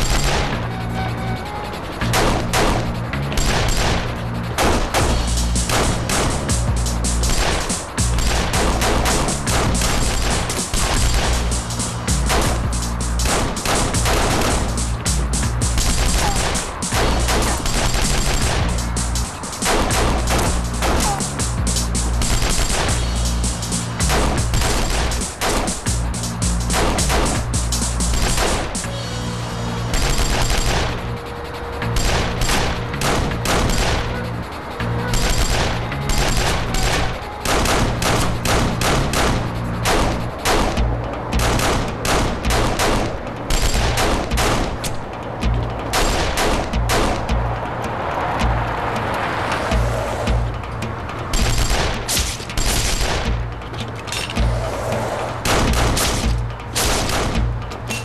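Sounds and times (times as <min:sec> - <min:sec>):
gunshots: 0:00.0 - 0:00.6, 0:02.1 - 0:06.6, 0:07.2 - 0:14.7, 0:15.6 - 0:21.4, 0:22.2 - 0:23.0, 0:24.0 - 0:25.9, 0:26.7 - 0:28.8, 0:29.9 - 0:31.0, 0:31.9 - 0:34.3, 0:35.1 - 0:40.8, 0:41.4 - 0:45.0, 0:45.9 - 0:47.3, 0:51.3 - 0:53.4, 0:55.4 - 0:57.6
background music with low tones: 0:00.0 - 0:58.0.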